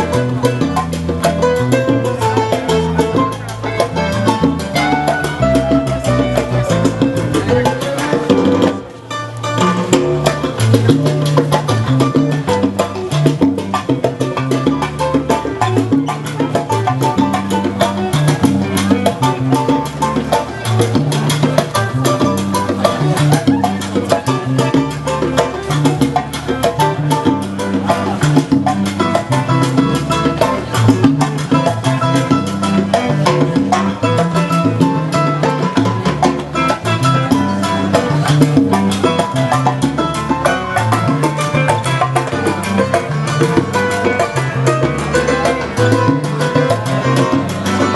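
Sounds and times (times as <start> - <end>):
salsa music: 0.0 - 47.9.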